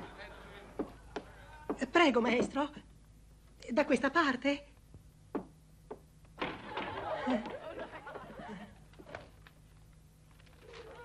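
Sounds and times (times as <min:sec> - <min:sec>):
audience chuckling and murmuring: 0:00.0 - 0:01.5, 0:06.7 - 0:09.3.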